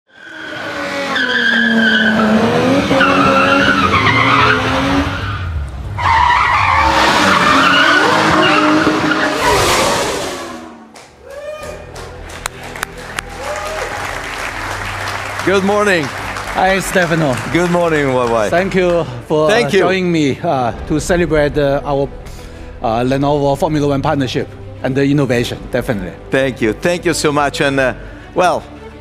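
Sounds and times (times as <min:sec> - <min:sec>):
scattered claps: 0:10.9 - 0:19.2.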